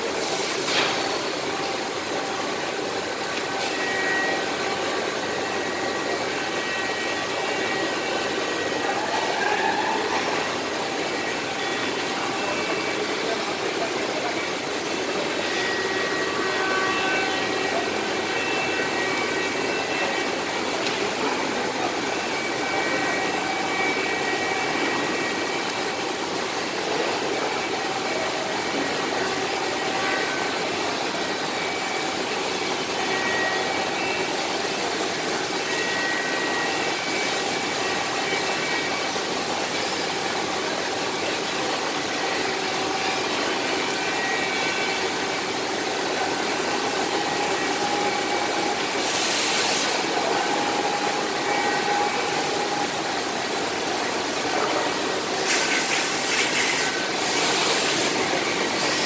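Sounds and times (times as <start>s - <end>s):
wrapping machine humming: 0.0s - 59.0s.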